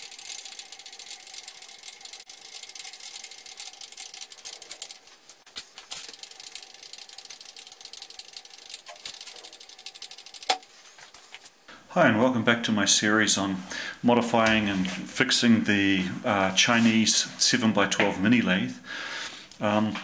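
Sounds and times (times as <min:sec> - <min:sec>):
rapid mechanical ticking clatter: 0:00.0 - 0:05.1, 0:06.0 - 0:10.6.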